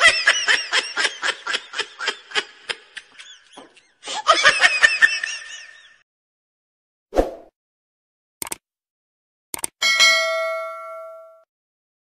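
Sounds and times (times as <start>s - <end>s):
notification bell ding: 9.8s - 11.5s.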